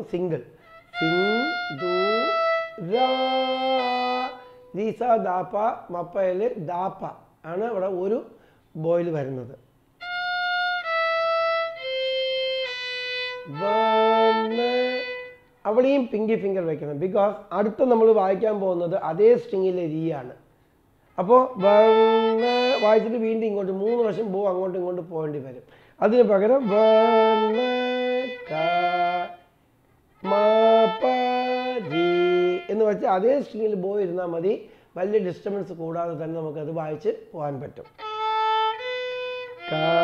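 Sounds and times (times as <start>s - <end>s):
violin playing long bowed notes: 0.6s - 5.0s, 10.0s - 15.4s, 21.5s - 24.3s, 26.4s - 29.4s, 30.2s - 33.2s, 37.9s - 40.0s.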